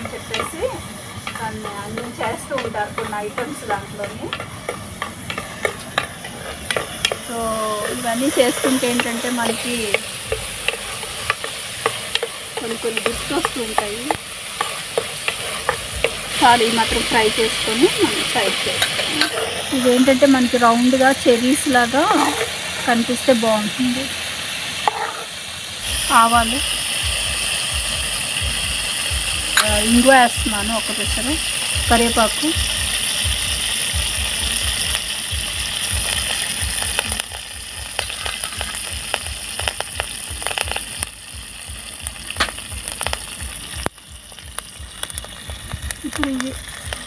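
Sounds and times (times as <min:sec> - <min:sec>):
tomatoes sizzling in hot oil: 0:00.0 - 0:47.0.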